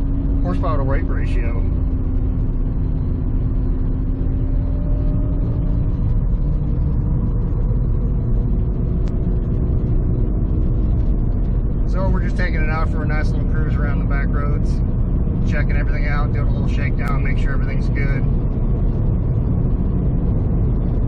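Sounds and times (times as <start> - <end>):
car engine cruising: 0.0 - 21.0
road rumble: 0.0 - 21.0.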